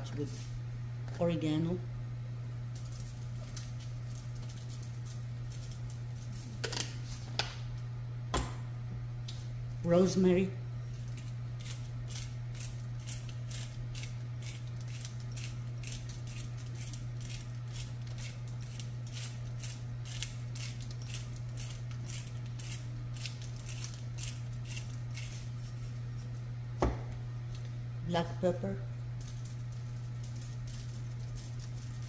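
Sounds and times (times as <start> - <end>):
steady low hum: 0.0 - 32.0
herbs rustling sprinkled by hand: 2.4 - 7.3, 10.8 - 26.4, 29.0 - 32.0.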